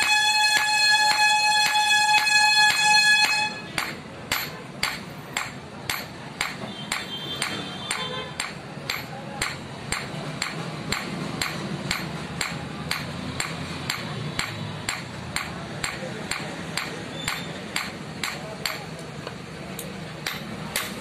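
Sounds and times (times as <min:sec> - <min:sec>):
hammer striking steel on anvil: 0:00.0 - 0:19.0, 0:19.8 - 0:21.0.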